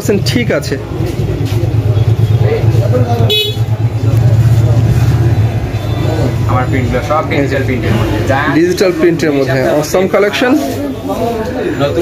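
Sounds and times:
vehicle engine rumbling: 0:00.0 - 0:12.0
high-pitched horn beep: 0:03.3 - 0:03.7.

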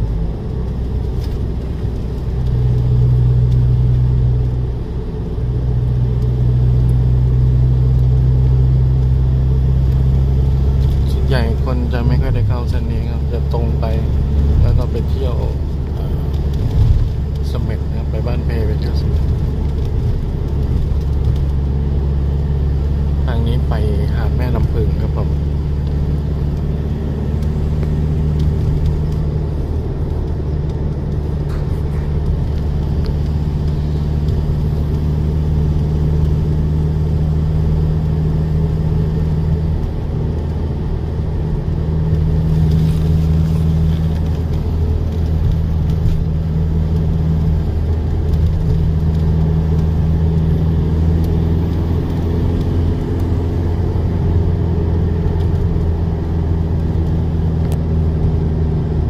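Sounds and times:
car engine and tyres droning: 0:00.0 - 0:59.0.

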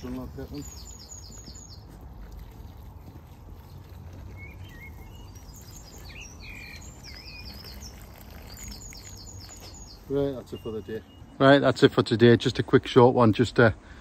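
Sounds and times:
small birds chirping: 0:00.0 - 0:11.7
lower bird calls: 0:00.1 - 0:01.9, 0:03.6 - 0:11.4.

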